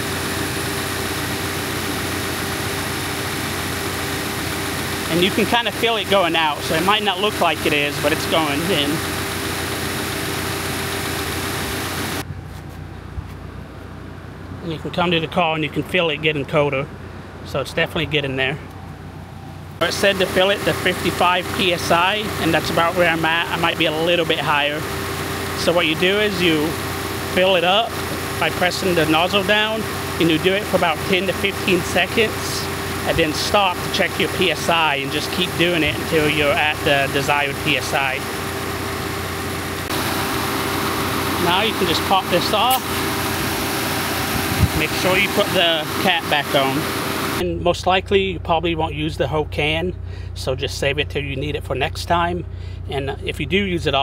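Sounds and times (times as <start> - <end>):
car engine idling: 0.0 - 54.0
loud steady hiss: 24.6 - 47.4.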